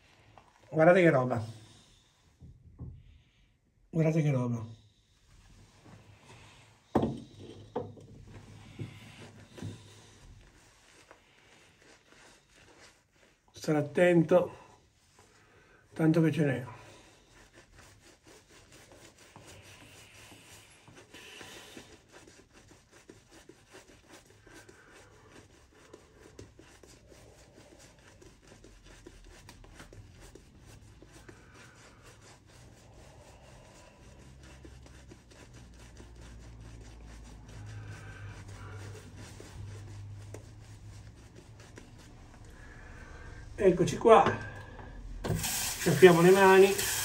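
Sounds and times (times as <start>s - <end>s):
shaving brush rubbing on face: 8.2s - 44.2s, 44.9s - 47.0s.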